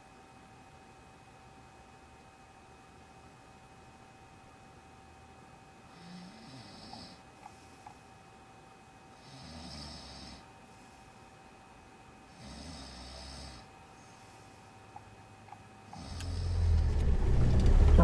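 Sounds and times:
man snoring: 0:05.9 - 0:07.2, 0:09.2 - 0:10.5, 0:12.3 - 0:13.7, 0:16.0 - 0:16.8
loud low car rumble: 0:16.4 - 0:18.0.

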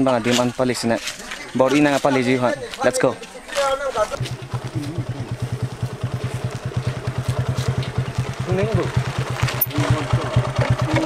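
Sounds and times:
motorcycle engine running slowly: 0:03.8 - 0:11.0.

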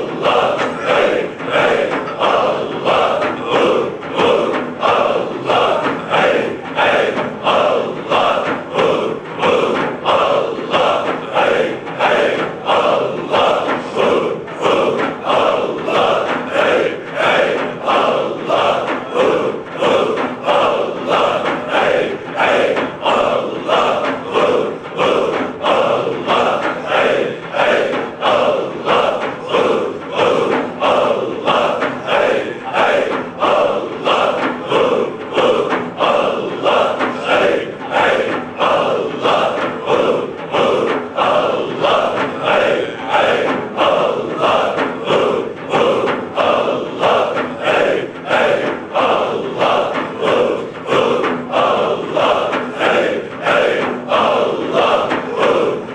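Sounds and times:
frame drums beating: 0:00.0 - 0:55.9
men chanting in unison: 0:00.0 - 0:55.9.

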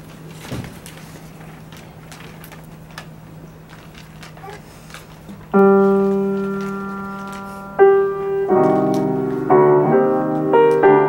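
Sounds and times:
grand piano chords: 0:05.4 - 0:11.0.

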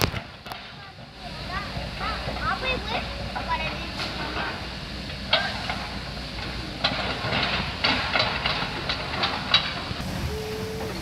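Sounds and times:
metal knocks and clanks: 0:05.3 - 0:10.0
steady low rumble: 0:09.6 - 0:11.0.

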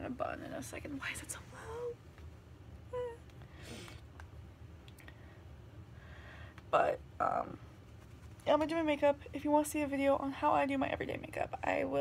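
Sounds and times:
woman whining: 0:02.9 - 0:03.8
faint rustling: 0:07.5 - 0:08.9.

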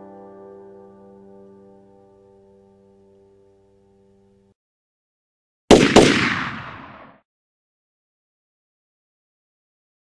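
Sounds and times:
gunshots with echo: 0:05.7 - 0:07.2.

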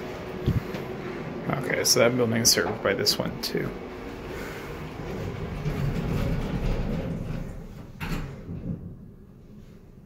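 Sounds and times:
elevator doors sliding: 0:00.0 - 0:10.0
elevator doors thumping shut: 0:04.9 - 0:09.2.

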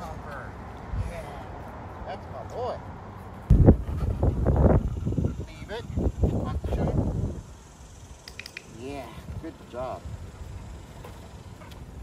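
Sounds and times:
wind rumble on microphone: 0:03.5 - 0:07.6
sharp clicks: 0:08.2 - 0:08.8.

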